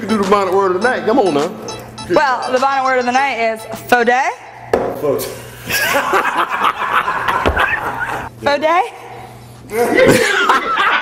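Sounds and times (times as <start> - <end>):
woman laughing: 5.6 - 8.3, 9.8 - 11.0
people chuckling and talking: 9.7 - 11.0.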